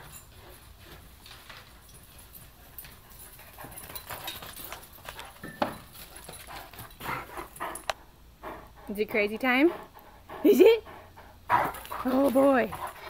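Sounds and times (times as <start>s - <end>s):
dog panting: 0.2s - 13.0s.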